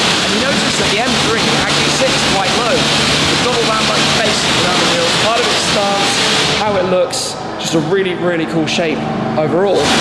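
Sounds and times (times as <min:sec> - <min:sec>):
pressure washer jet hissing: 0:00.0 - 0:06.9
low steady hum: 0:00.0 - 0:10.0.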